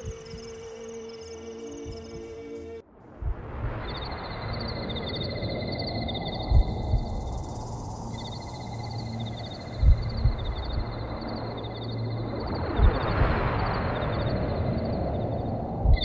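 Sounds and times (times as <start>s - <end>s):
crickets chirping: 0.0s - 16.0s
low background rumble: 3.0s - 16.0s
dull low thumps: 6.4s - 7.5s, 9.8s - 11.3s.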